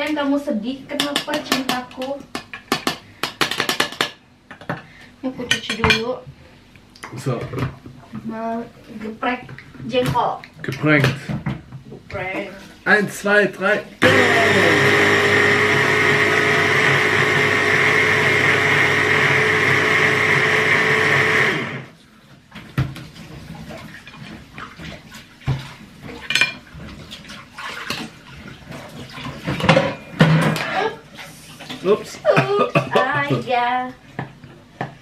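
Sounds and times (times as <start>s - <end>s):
electric hand blender running: 14.0s - 22.0s.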